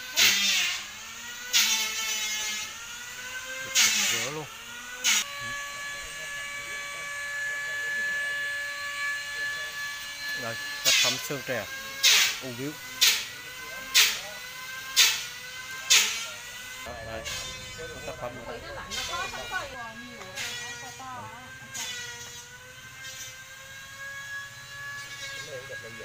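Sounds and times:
hum of held tones: 0:16.9 - 0:21.6.

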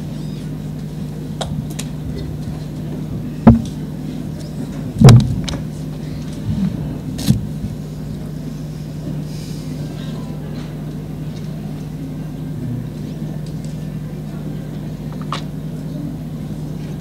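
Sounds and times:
low electrical hum: 0:00.0 - 0:17.0
dull thumps: 0:03.4 - 0:03.8, 0:05.0 - 0:05.6.

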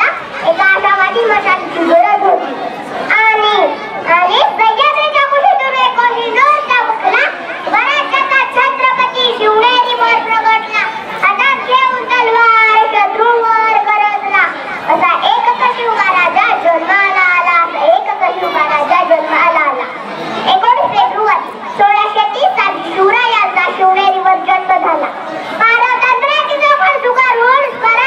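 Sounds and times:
girl speaking into microphone: 0:00.0 - 0:28.0.

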